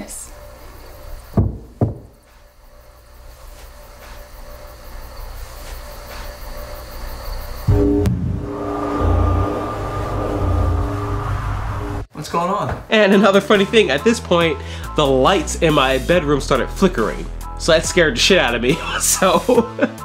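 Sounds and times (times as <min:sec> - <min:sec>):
low rumbling drone: 0:07.7 - 0:12.1
swell of held tones: 0:07.7 - 0:12.1.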